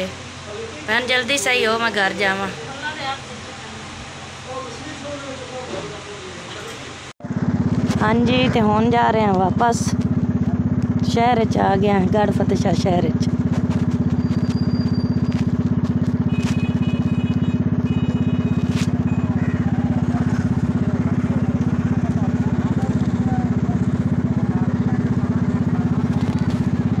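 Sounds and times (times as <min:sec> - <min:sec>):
motorcycle engine running: 0:07.2 - 0:27.0.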